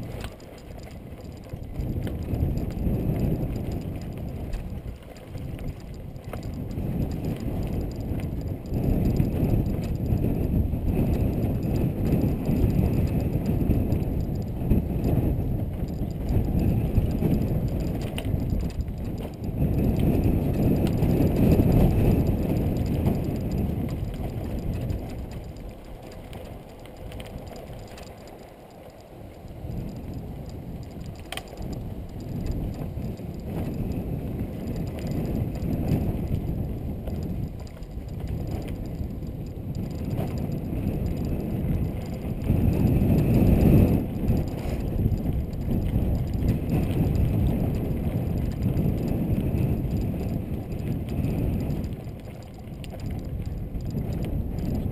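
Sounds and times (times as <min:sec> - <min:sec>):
bike tyres rattling on dirt: 0:00.0 - 0:54.9.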